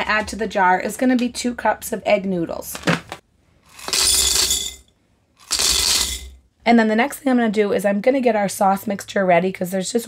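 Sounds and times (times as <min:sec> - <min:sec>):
dry noodles rattling into glass jar: 0:03.7 - 0:04.8, 0:05.4 - 0:06.4.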